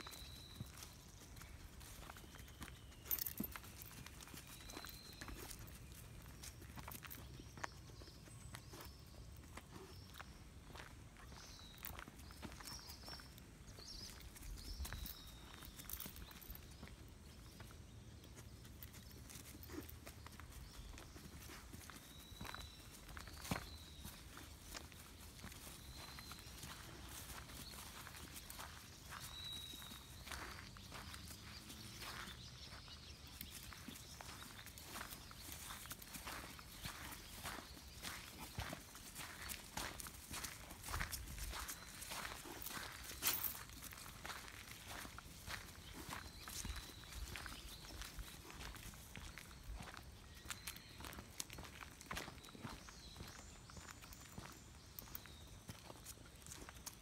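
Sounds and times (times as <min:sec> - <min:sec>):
bird chirps: 0:00.0 - 0:57.0
footsteps on paved path: 0:00.0 - 0:57.0.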